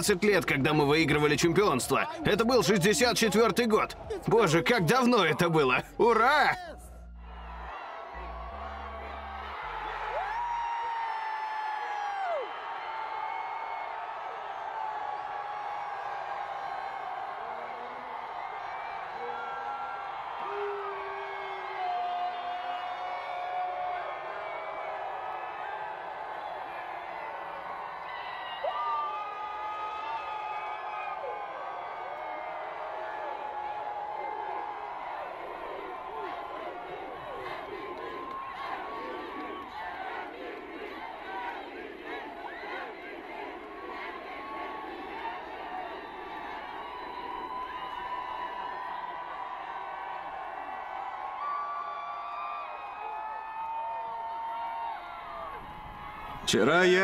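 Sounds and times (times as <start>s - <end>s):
crowd cheering and whooping: 7.0s - 57.0s.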